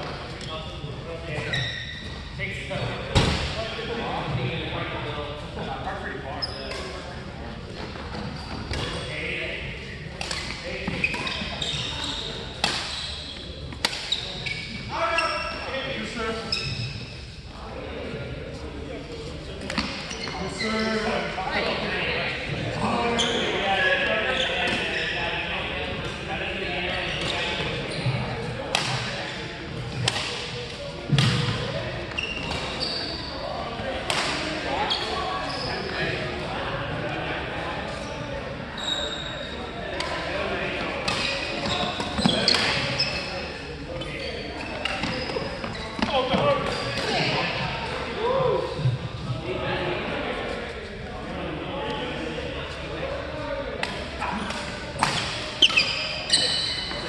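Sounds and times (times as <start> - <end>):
shoes squeaking on court floor: 0.0 - 5.6, 6.2 - 36.6, 37.6 - 49.3, 52.7 - 57.0
voices: 0.0 - 57.0
rackets hitting shuttlecock: 12.6 - 13.0, 13.7 - 14.3, 28.7 - 29.2, 30.0 - 31.6, 34.0 - 34.5, 53.8 - 55.8.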